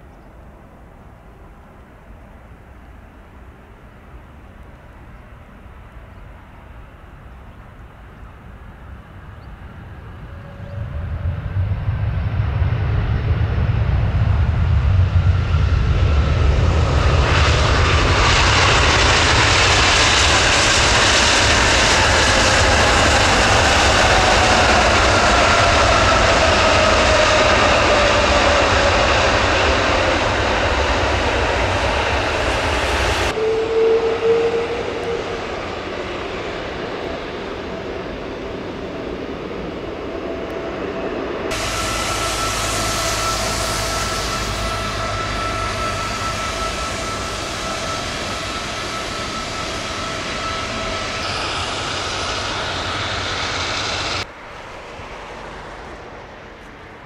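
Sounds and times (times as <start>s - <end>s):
jet engines roaring: 6.7s - 57.0s
falling engine whine: 8.9s - 57.0s.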